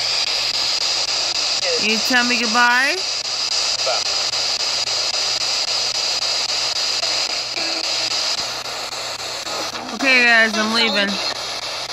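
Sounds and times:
radio static hiss: 0.0 - 11.9
snatches of radio broadcast: 0.0 - 11.9.

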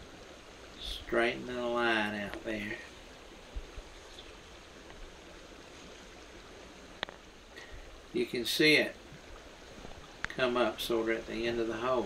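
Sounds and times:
creek water rushing over rocks: 0.0 - 12.0.

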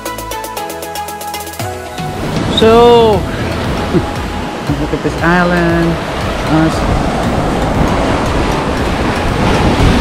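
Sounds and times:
waves breaking on shore: 1.7 - 10.0
wind buffeting microphone: 2.1 - 10.0.

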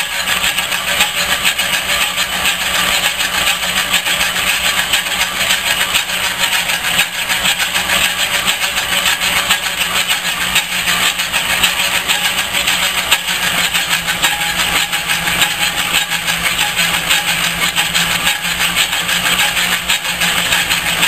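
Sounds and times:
metal lathe whirring: 0.0 - 21.0.

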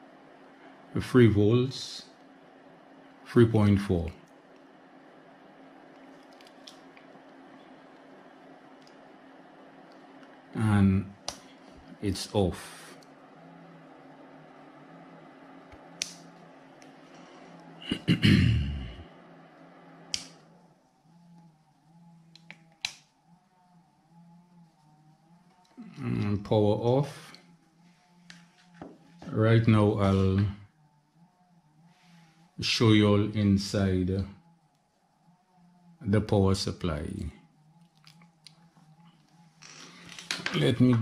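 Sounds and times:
faint low hum: 0.0 - 41.0.

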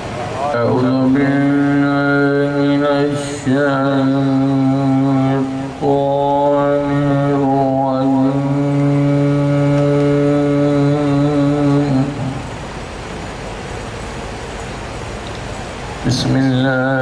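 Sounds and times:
steady hiss: 0.0 - 17.0
man chanting a long note: 0.3 - 12.5, 16.0 - 17.0.

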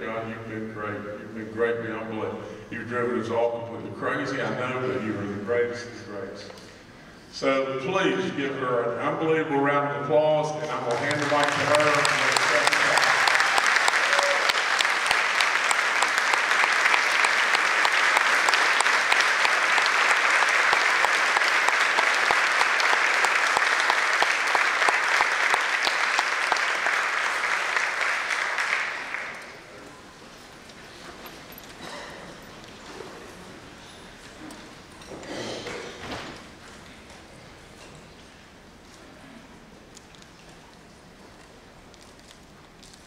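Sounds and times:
large audience applauding: 10.6 - 29.7.

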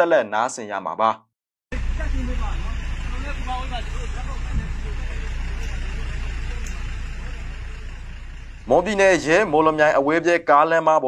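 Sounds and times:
road traffic rumble: 1.7 - 10.7
faint voices: 1.8 - 10.1.

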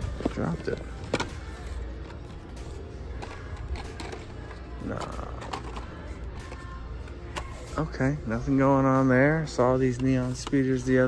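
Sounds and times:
faint store background music: 0.0 - 11.0.

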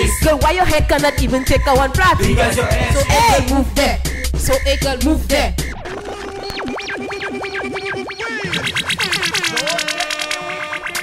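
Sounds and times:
stuttering clicks with sliding tones: 1.7 - 3.8
warbling synth tone: 1.7 - 4.0.

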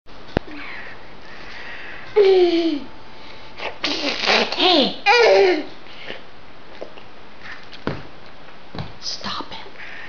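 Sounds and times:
background hiss: 0.1 - 10.0.

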